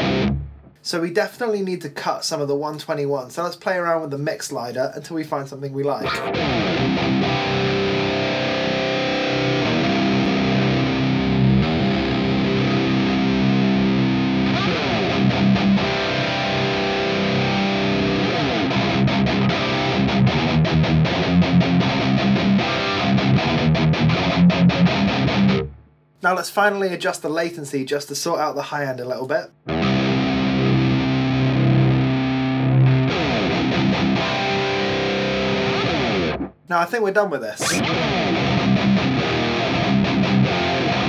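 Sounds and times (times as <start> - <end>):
distorted electric guitar chords: 0.0 - 0.8, 6.0 - 25.9, 29.6 - 36.6, 37.6 - 41.0.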